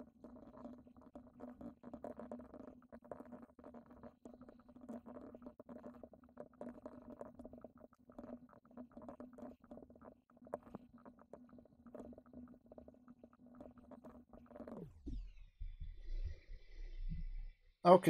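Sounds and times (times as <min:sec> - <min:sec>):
low hum: 0:14.8 - 0:17.8.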